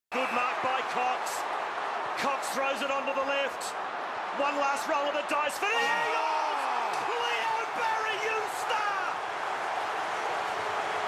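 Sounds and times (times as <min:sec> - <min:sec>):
commentator speaking excitedly: 0:00.1 - 0:01.5, 0:02.1 - 0:09.2
stadium crowd noise: 0:00.1 - 0:11.0.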